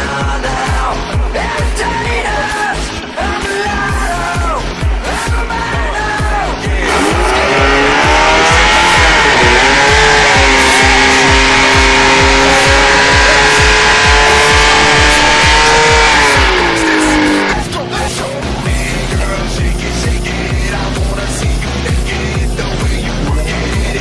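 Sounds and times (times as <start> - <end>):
background music with beat: 0.0 - 24.0
engine revving: 0.0 - 24.0.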